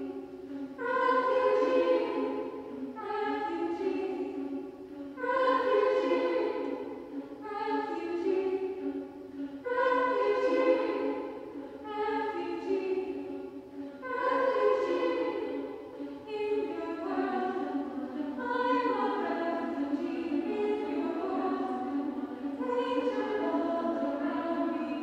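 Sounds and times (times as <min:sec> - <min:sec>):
women's choir singing a cappella: 0:00.0 - 0:25.0.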